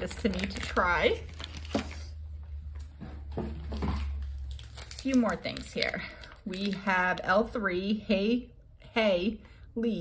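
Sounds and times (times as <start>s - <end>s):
packaging crinkling and rustling: 0.0s - 2.2s, 3.4s - 7.1s.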